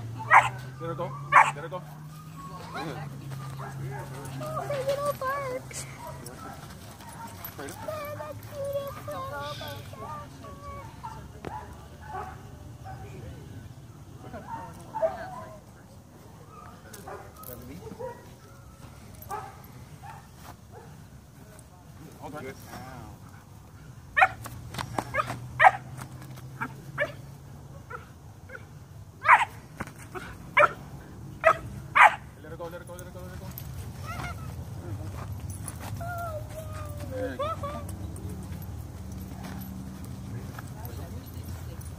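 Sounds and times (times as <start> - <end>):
puppy yipping and barking: 0.2 - 2.9, 25.1 - 25.8, 29.2 - 29.5, 30.6 - 30.8, 31.4 - 32.2
puppy whining: 2.1 - 3.0, 35.9 - 38.3.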